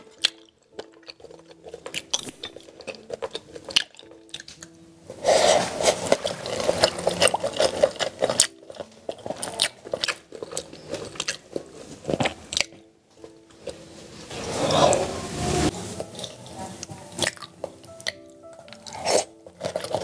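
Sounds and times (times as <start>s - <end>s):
person chewing food: 0.0s - 15.0s, 17.2s - 20.0s.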